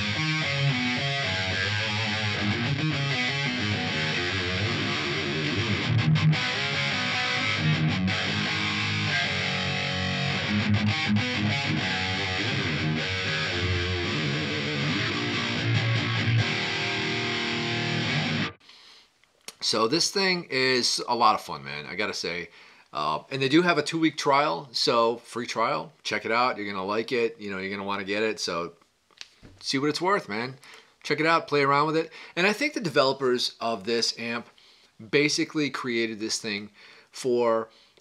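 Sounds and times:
distorted electric guitar riff: 0:00.0 - 0:18.6.

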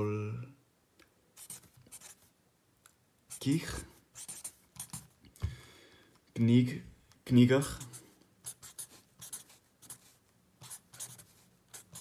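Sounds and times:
pen writing on paper: 0:01.4 - 0:02.2, 0:04.2 - 0:05.1, 0:07.7 - 0:12.0.

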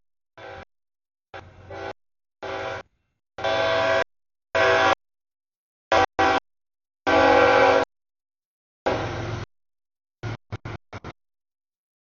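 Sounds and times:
locomotive air horn blasts: 0:00.4 - 0:00.7, 0:01.3 - 0:05.0, 0:05.9 - 0:07.9, 0:08.9 - 0:09.5.

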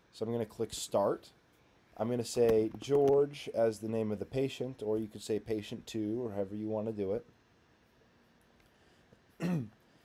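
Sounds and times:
man clearing throat: 0:09.4 - 0:09.8.

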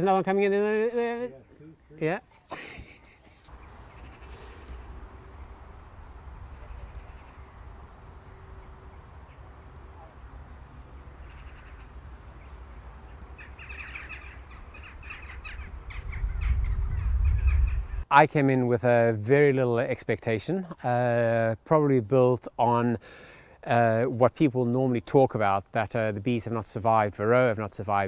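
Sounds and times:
birds calling: 0:02.9 - 0:18.1.

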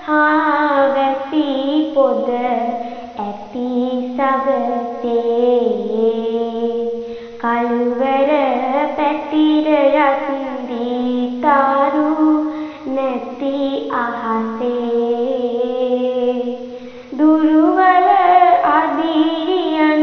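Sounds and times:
girl singing solo: 0:00.0 - 0:20.0.

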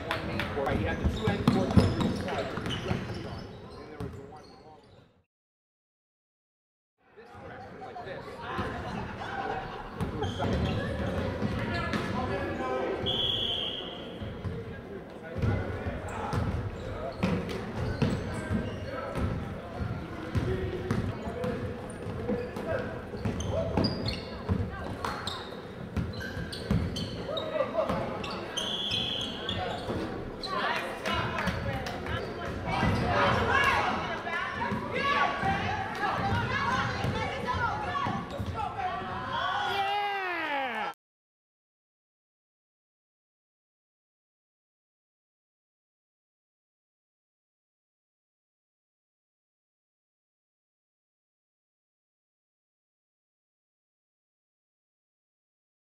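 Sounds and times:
referee's whistle: 0:13.0 - 0:14.1, 0:28.6 - 0:29.4
voices echoing in hall: 0:26.4 - 0:40.9.

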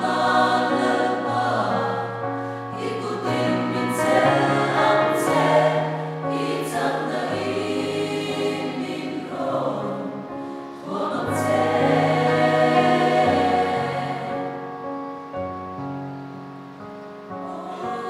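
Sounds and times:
congregation singing a hymn: 0:00.0 - 0:14.7, 0:17.4 - 0:18.0.

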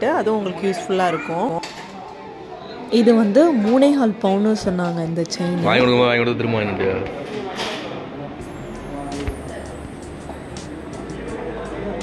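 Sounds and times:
woman's voice: 0:00.0 - 0:01.7, 0:02.9 - 0:05.7
shop background noise: 0:00.0 - 0:12.0.

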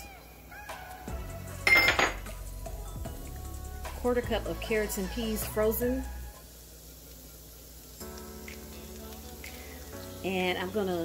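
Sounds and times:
quiet background music: 0:00.0 - 0:11.0
ceramic dish clinking: 0:01.7 - 0:02.3.

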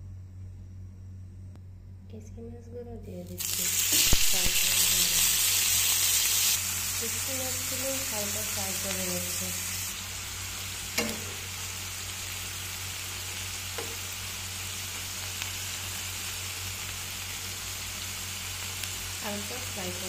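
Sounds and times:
fish sizzling in oil: 0:03.3 - 0:20.0.

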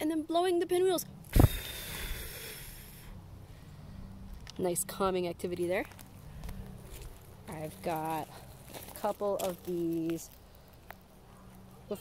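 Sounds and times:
airy breath hiss: 0:01.3 - 0:04.2.

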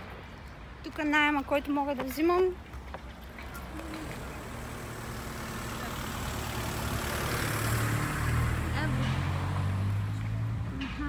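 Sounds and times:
vehicle passing: 0:03.2 - 0:11.0.

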